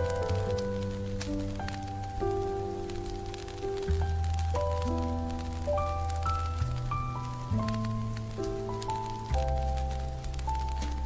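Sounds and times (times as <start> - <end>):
jazz piano chords: 0.0 - 11.0
light ticks like rain: 0.0 - 11.0.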